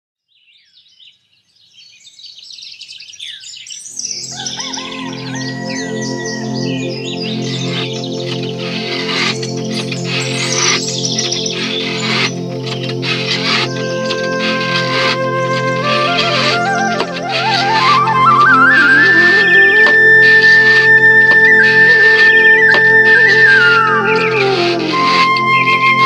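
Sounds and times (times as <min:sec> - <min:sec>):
birds chirping: 0:00.4 - 0:26.0
held musical chord: 0:04.8 - 0:26.0.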